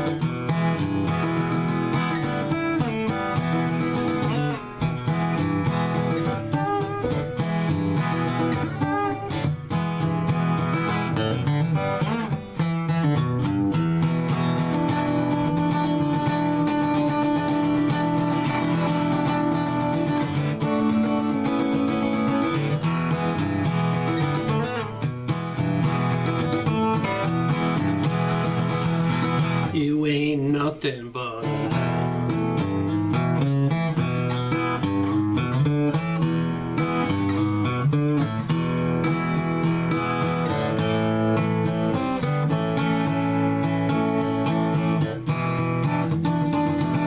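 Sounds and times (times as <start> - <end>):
acoustic guitar playing blues: 0.0 - 47.0.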